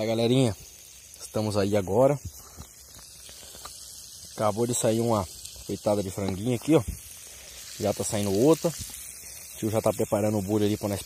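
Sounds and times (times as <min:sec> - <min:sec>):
chicken sizzling in oil: 0:00.0 - 0:11.0.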